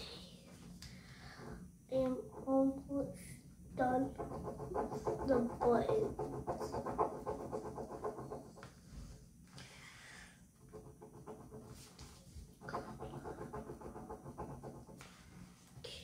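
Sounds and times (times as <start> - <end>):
pen scratching on paper: 3.8 - 8.8, 10.6 - 15.4.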